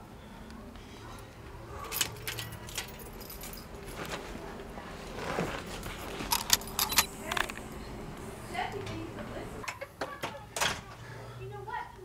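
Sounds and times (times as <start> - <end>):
sharp metallic clinks and jingles: 1.8 - 4.0, 6.1 - 7.4.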